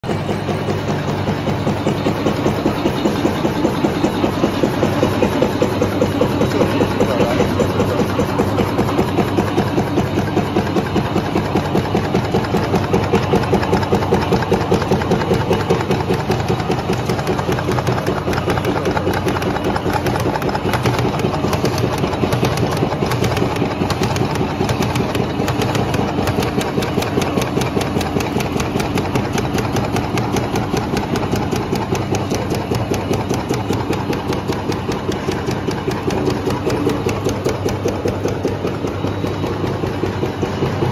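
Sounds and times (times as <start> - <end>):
die press stamping: 2.9 - 39.4.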